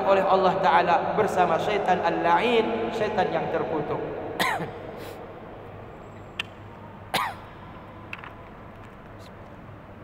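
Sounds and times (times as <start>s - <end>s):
man clearing his throat: 4.4s - 4.9s, 7.2s - 7.4s.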